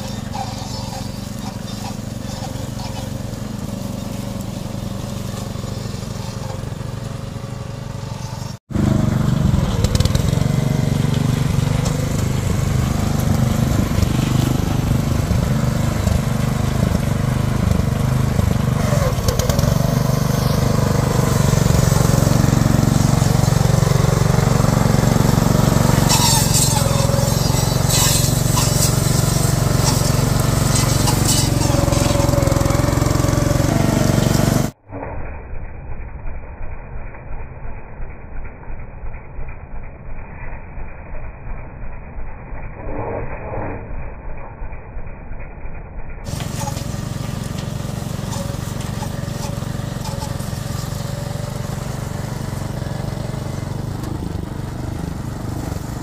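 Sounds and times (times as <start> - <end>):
dry stalks crackling in cutter: 0.0 - 36.2, 46.3 - 56.0
harvester engine running: 0.0 - 56.0.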